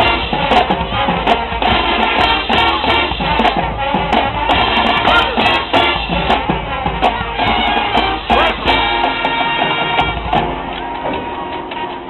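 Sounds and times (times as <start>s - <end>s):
marching band brass chord: 0.0s - 12.0s.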